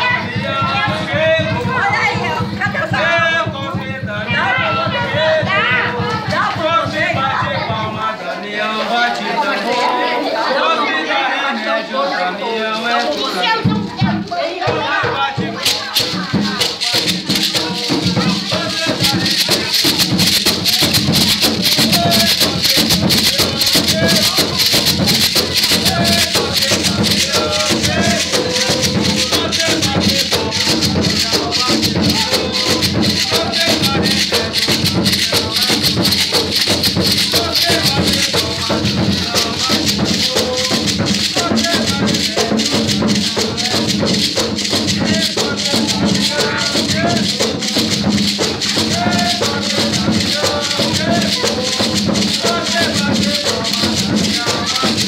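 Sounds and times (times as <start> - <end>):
people talking: 0.0 - 44.2, 45.0 - 55.0
people singing: 0.0 - 55.0
hand rattles shaken: 12.7 - 55.0.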